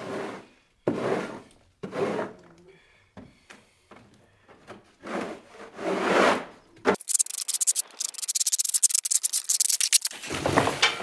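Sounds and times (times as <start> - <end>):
plastic shovel scraping gritty floor: 0.0 - 2.4, 5.0 - 6.6, 10.1 - 11.0.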